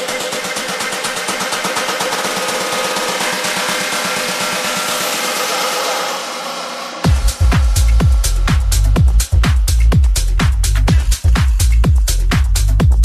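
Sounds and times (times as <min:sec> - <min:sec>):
electronic dance music build-up: 0:00.0 - 0:13.0
rising noise sweep: 0:02.5 - 0:09.0.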